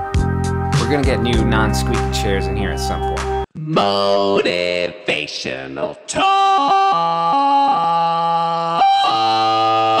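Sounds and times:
man singing long held notes: 0:03.6 - 0:10.0.

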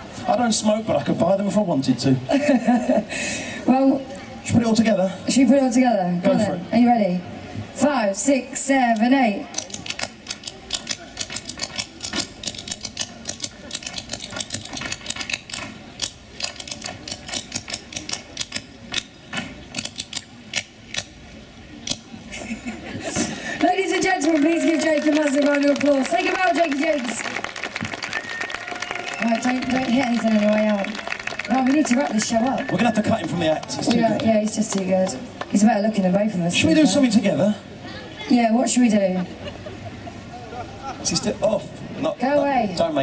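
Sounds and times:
voices: 0:21.6 - 0:43.0
applause: 0:23.5 - 0:35.5.

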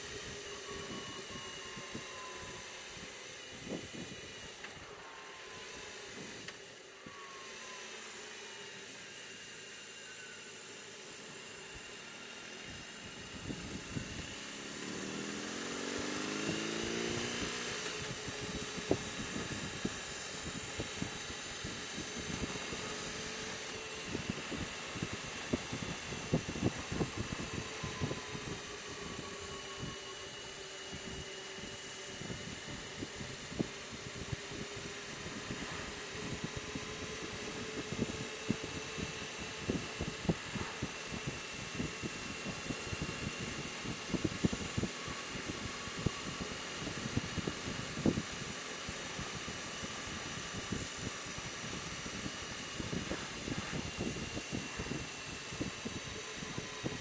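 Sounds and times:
motorcycle engine running: 0:13.1 - 0:31.6
wind buffeting microphone: 0:18.0 - 0:30.0.

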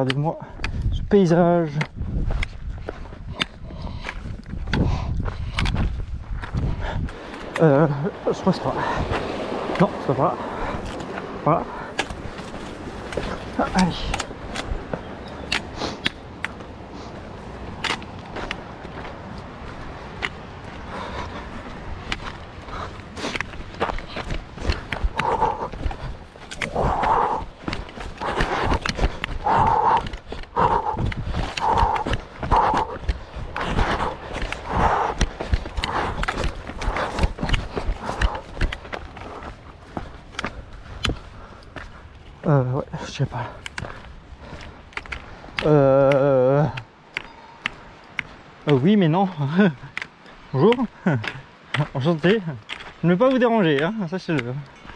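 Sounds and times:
footsteps on rocky trail: 0:00.0 - 0:54.9
rhythmic breathing puffs: 0:01.6 - 0:54.9.

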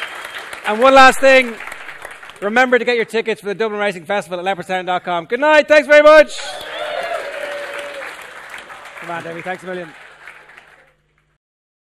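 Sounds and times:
audience applause: 0:00.0 - 0:02.5, 0:06.4 - 0:11.2.

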